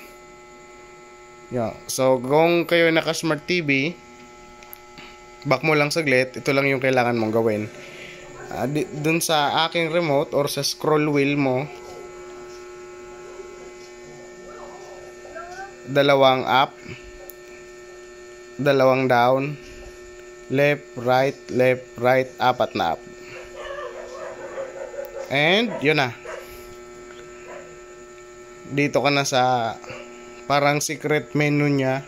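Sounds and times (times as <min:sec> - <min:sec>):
electrical hum: 0:00.0 - 0:32.0.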